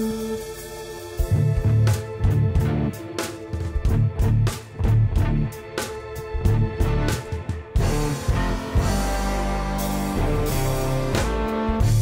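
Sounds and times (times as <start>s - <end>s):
low bass line: 0.0s - 3.0s, 3.8s - 5.6s, 6.3s - 12.0s
drums: 0.0s - 12.0s
jazz-hop band playing: 0.0s - 12.0s.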